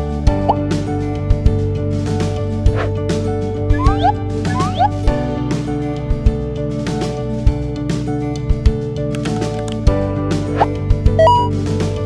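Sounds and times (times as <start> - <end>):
background music with drums: 1.4 - 8.1
rising pop sound effect: 3.7 - 5.2.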